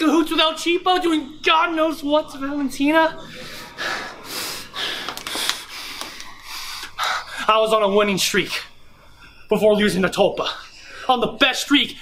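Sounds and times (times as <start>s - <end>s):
man breathing hard: 3.2s - 7.5s.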